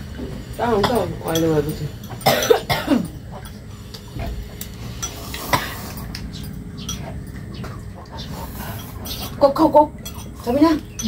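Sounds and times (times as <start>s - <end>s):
person coughing: 2.2s - 3.2s.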